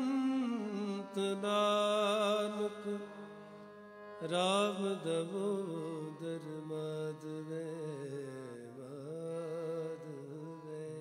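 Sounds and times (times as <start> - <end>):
man singing with vibrato: 0.0 - 3.6, 4.2 - 11.0
harmonium drone: 0.0 - 11.0.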